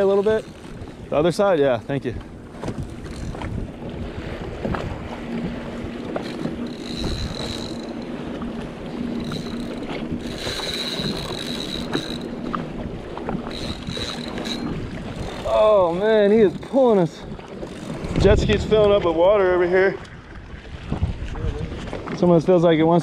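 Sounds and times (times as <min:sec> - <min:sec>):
choppy water splashing: 0:00.0 - 0:23.0
wind buffeting microphone: 0:00.0 - 0:23.0.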